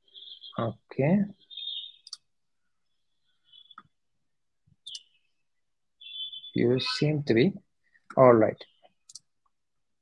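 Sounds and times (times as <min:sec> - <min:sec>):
computer mouse clicks: 0:02.0 - 0:02.3, 0:04.8 - 0:05.1, 0:08.9 - 0:09.3.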